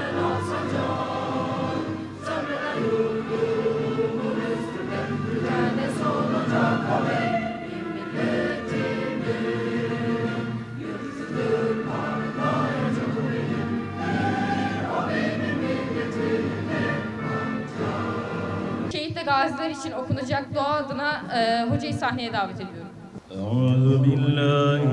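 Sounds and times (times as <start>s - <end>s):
choir singing: 0.0s - 18.9s, 23.4s - 24.9s
orchestral accompaniment: 0.0s - 18.9s.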